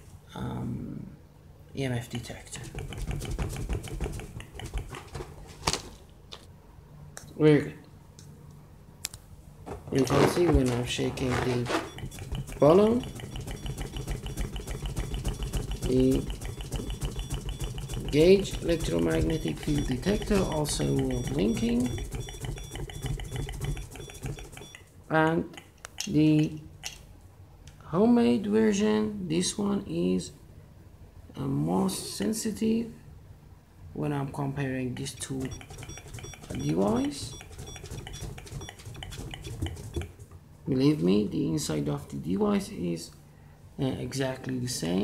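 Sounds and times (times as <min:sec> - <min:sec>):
objects clicking on a table: 0:02.7 - 0:05.0, 0:35.3 - 0:40.2
detector alarm beeping rapidly: 0:10.0 - 0:24.8, 0:35.2 - 0:40.2.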